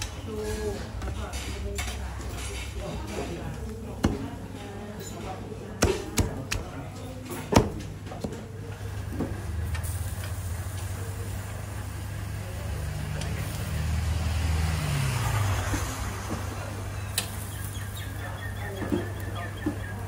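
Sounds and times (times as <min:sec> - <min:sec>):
vehicle passing by: 0:11.9 - 0:18.0.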